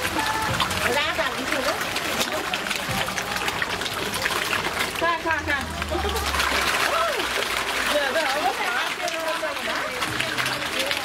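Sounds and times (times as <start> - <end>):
fish splashing at water surface: 0.0 - 11.0.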